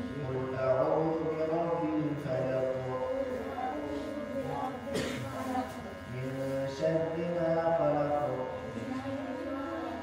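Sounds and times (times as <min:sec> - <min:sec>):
person chanting verses: 0:00.0 - 0:09.8.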